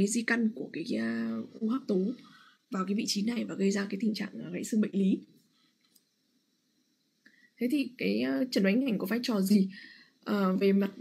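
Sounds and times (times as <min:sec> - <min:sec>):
woman speaking: 0:00.0 - 0:05.3, 0:07.6 - 0:11.0
faint clicks: 0:05.8 - 0:06.1.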